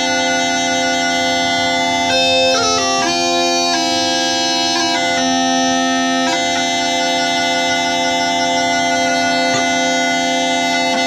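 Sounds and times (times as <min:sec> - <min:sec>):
bagpipe chanter note over drones: 0:00.0 - 0:11.0.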